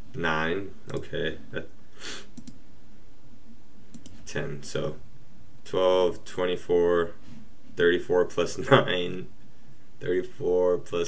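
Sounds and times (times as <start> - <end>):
computer mouse clicks: 2.3 - 2.6, 3.9 - 4.2.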